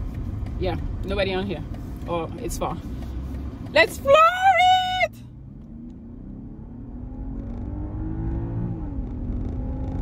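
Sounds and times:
low road rumble: 0.0 - 10.0
muffled car engine accelerating: 0.0 - 10.0.

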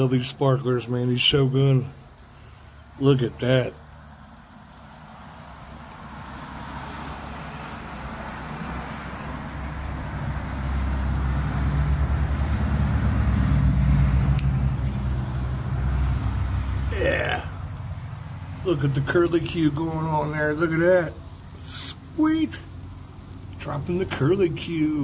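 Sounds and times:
sparklers hissing: 0.0 - 25.0.

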